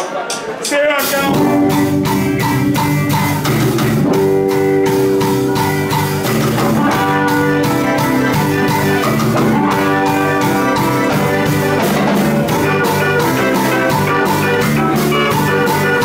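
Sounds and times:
live band playing: 0.0 - 16.0.

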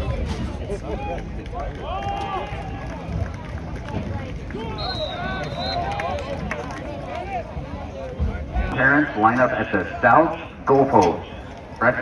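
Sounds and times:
whistle blast: 4.7 - 6.0.

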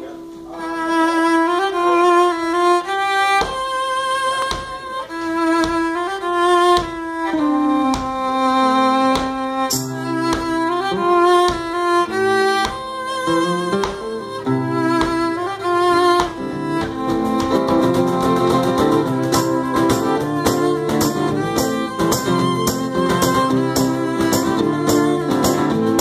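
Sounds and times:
fiddle melody: 0.0 - 26.0
resonator guitar picked chords: 8.9 - 26.0.

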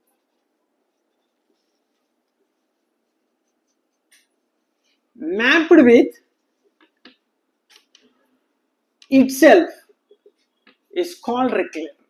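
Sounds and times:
marker writing on whiteboard: 0.1 - 5.0.

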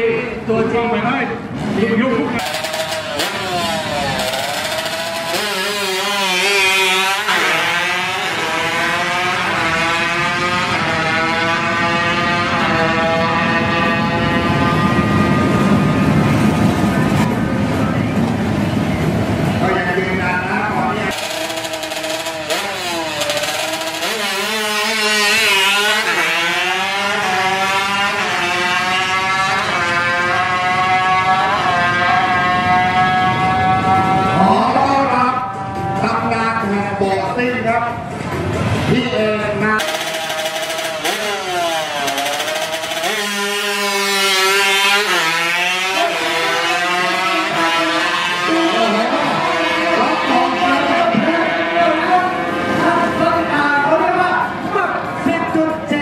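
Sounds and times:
motorbike engines revving hard: 1.4 - 56.0.

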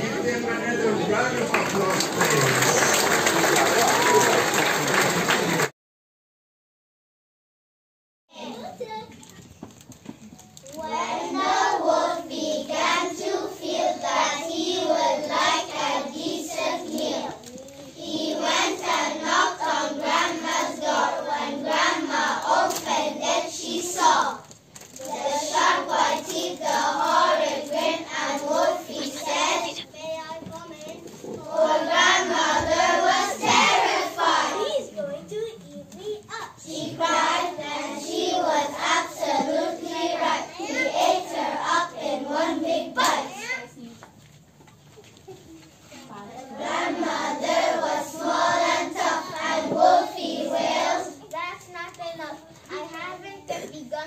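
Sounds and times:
children singing in unison: 10.9 - 17.3, 18.0 - 24.2, 25.1 - 29.8, 31.4 - 34.7, 36.7 - 43.0, 46.5 - 51.2.

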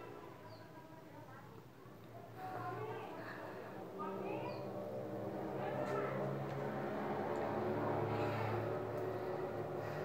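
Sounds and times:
low motor hum: 3.0 - 10.0.

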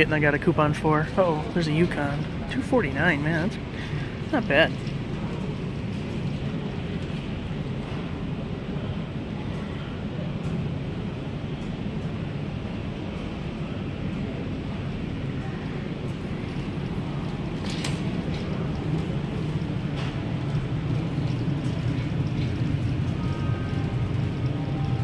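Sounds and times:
low hum: 0.0 - 25.0.

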